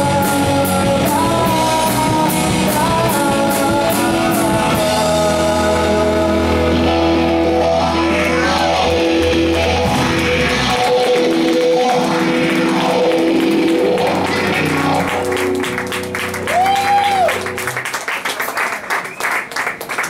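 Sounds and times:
electric guitars sustaining notes: 0.0 - 18.1
drums: 0.0 - 19.2
audience applause: 10.5 - 20.0.

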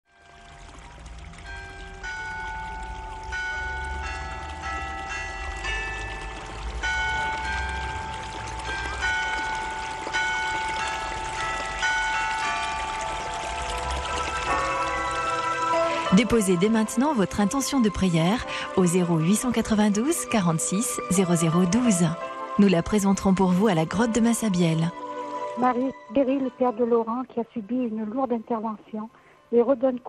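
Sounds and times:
bell-like chime melody: 1.4 - 27.0.

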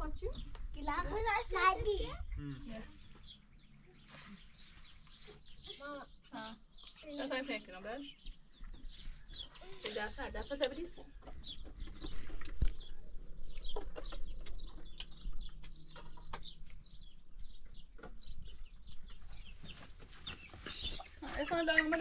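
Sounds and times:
small bird chirps: 0.3 - 22.0
hen clucking: 19.4 - 22.0.

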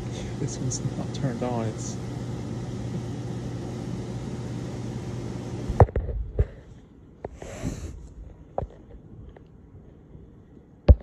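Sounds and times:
ceiling fan motor humming: 0.0 - 11.0.

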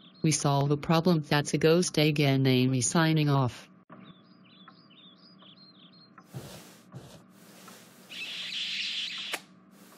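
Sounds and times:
birds chirping: 0.0 - 1.3, 3.9 - 9.4.

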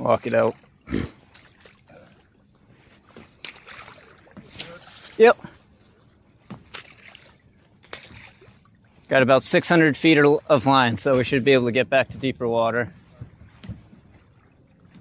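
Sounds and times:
water splashing and sloshing: 0.0 - 15.0.

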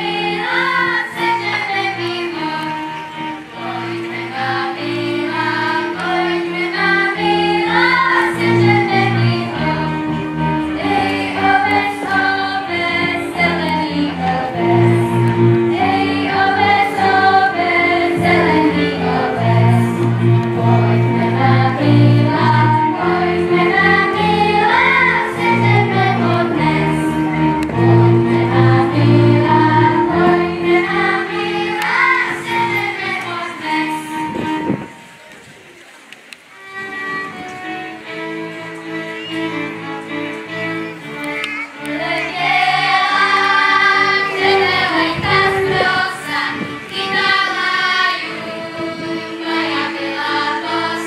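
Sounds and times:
children singing in chorus: 0.0 - 35.2, 36.7 - 51.0
fiddles and double bass: 0.0 - 51.0.

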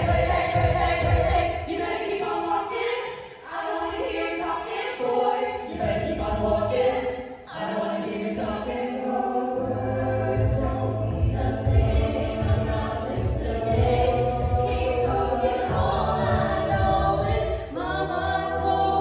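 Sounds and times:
a cappella group singing: 0.0 - 19.0
low vocal bass line: 9.6 - 17.5.

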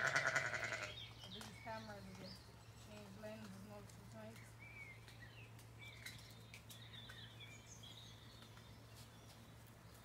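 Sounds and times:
sheep bleating: 0.0 - 1.0.

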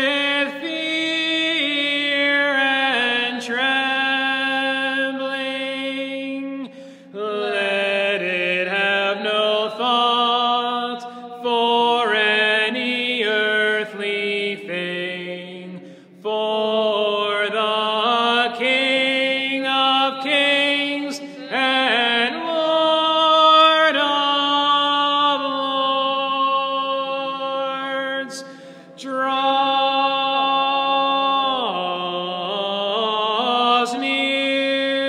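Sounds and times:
unaccompanied liturgical chant: 0.0 - 35.0.

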